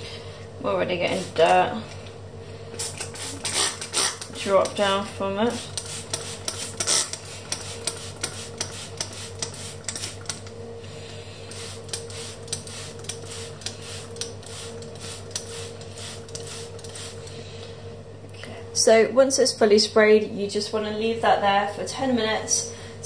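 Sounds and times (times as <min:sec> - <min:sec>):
steady low hum: 0:00.0 - 0:23.0
spray bottle hissing: 0:05.8 - 0:10.3.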